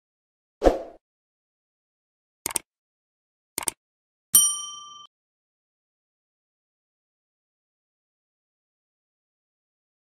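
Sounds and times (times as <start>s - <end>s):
bell ding: 4.4s - 5.1s.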